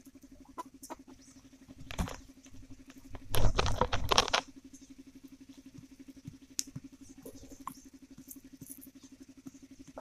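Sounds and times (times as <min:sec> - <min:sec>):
knocks and rustling: 0:01.7 - 0:04.5.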